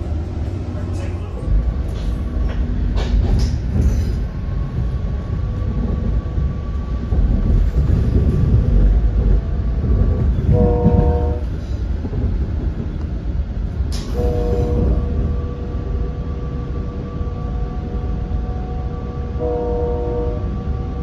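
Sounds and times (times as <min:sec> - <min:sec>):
train wheels rumbling on track: 0:00.0 - 0:21.0
clacks over rail joints: 0:01.0 - 0:15.4
train horn: 0:10.4 - 0:11.5, 0:14.1 - 0:16.2, 0:19.3 - 0:20.8.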